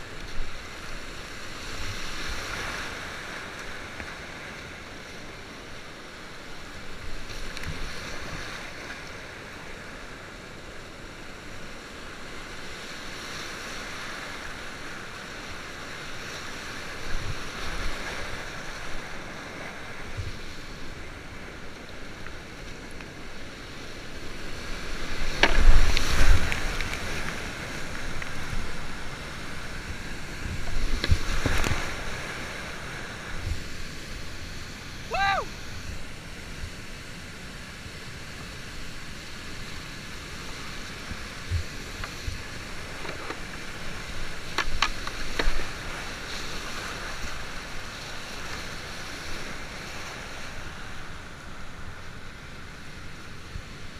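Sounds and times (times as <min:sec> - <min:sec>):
water crashing surges: 0:00.0 - 0:53.9
waves splashing over boat: 0:00.0 - 0:53.9
whitewater rapids roaring: 0:13.5 - 0:52.2
person shouting: 0:35.0 - 0:35.6.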